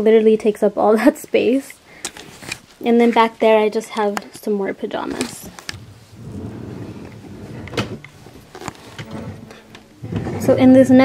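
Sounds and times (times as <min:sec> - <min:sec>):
drawer sliding on runners: 0:05.7 - 0:10.6.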